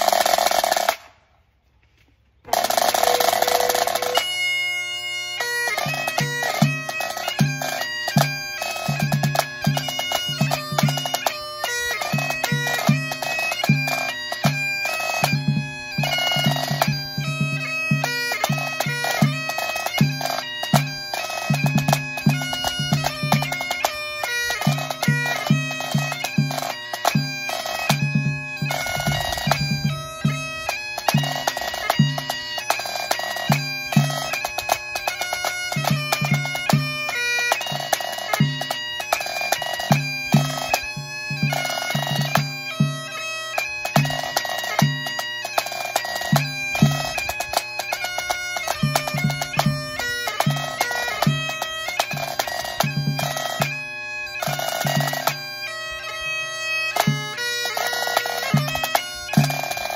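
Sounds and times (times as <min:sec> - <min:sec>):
bagpipes playing a march: 0:00.0 - 0:01.1, 0:02.5 - 0:59.9
tenor drum beating: 0:02.5 - 0:04.4, 0:05.7 - 0:53.9, 0:57.0 - 0:59.9.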